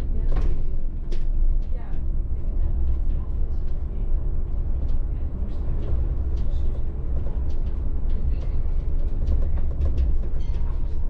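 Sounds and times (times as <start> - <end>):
bus drivetrain and tyres rumbling: 0.0 - 11.0.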